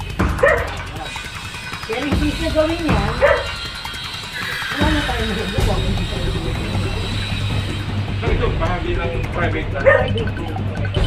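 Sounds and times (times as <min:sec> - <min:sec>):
dog barking and yipping: 0:00.3 - 0:01.1, 0:03.1 - 0:04.7, 0:09.8 - 0:10.2
people talking: 0:01.8 - 0:03.5, 0:04.4 - 0:07.3, 0:08.2 - 0:11.0.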